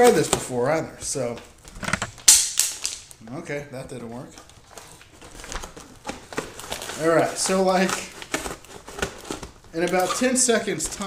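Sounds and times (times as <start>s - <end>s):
plastic shrink-wrap crinkling: 4.0s - 11.0s.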